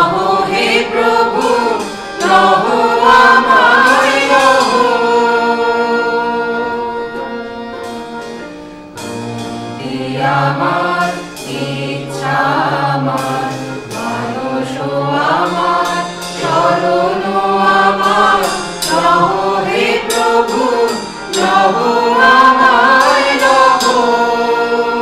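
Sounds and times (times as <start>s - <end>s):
mixed choir singing: 0.0s - 8.4s, 9.2s - 25.0s
harmonium: 0.0s - 25.0s.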